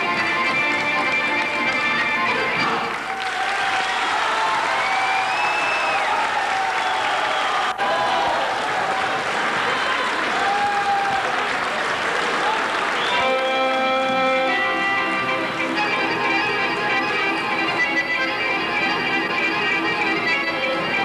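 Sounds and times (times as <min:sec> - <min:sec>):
audience applauding: 0:00.5 - 0:17.8.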